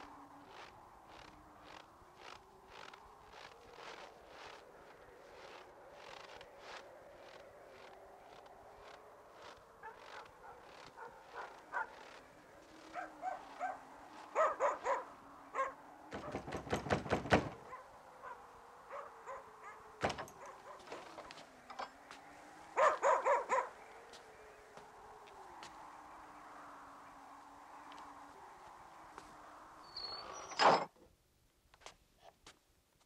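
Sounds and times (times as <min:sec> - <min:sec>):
dogs barking: 0:09.8 - 0:16.5, 0:17.6 - 0:21.2, 0:22.7 - 0:24.2.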